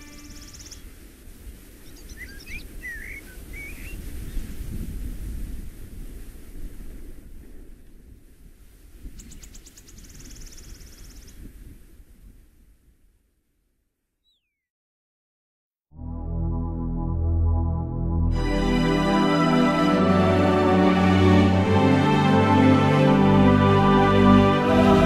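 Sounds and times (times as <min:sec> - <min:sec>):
birds chirping: 0:00.0 - 0:00.8, 0:01.8 - 0:04.0
rapid high bird trill: 0:00.0 - 0:00.8
short sweeping bird chirps: 0:00.0 - 0:00.8, 0:01.9 - 0:04.0
wind rumble on microphone: 0:00.2 - 0:13.3.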